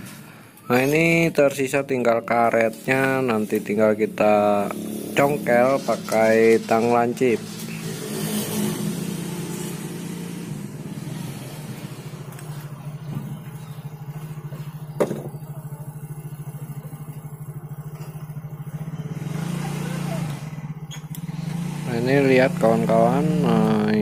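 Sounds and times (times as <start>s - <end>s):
low pulsing engine-like hum: 11.6s - 21.0s.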